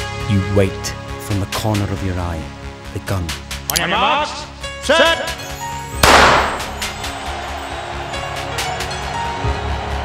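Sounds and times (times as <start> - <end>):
background music: 0.0 - 10.0
starting pistol shot: 6.0 - 6.8.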